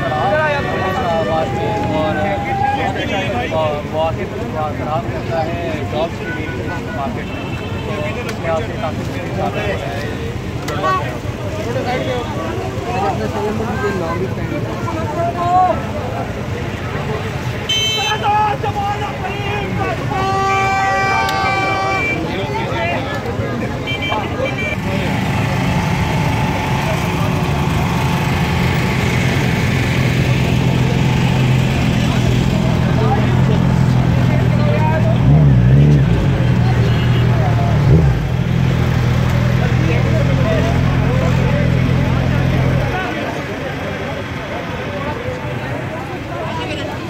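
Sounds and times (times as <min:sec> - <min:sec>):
crowd voices: 0:00.0 - 0:47.0
vehicle horn: 0:17.7 - 0:18.2, 0:20.1 - 0:22.3.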